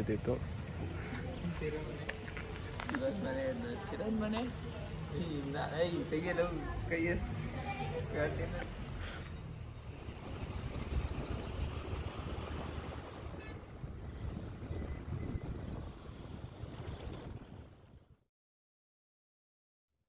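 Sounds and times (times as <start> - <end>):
motorcycle engine running: 9.3 - 14.7
wind buffeting microphone: 9.4 - 18.2.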